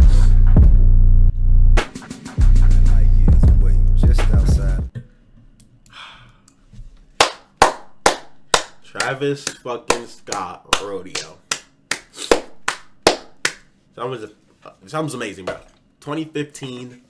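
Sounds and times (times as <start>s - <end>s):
man clapping hands: 7.2s - 13.7s.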